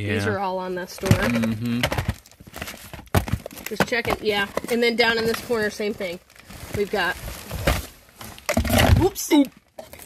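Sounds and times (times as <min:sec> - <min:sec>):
items rustling in cardboard box: 0:00.8 - 0:10.0.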